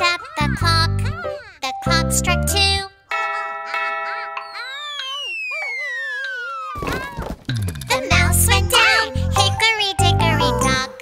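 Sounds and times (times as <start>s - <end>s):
clock chime: 3.1s - 5.0s
falling slide-whistle glide: 4.8s - 6.8s
cardboard boxes crashing: 6.8s - 7.5s.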